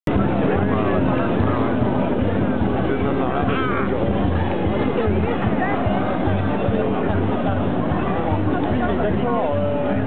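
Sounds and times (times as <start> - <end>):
crowd babble: 0.0 - 10.0.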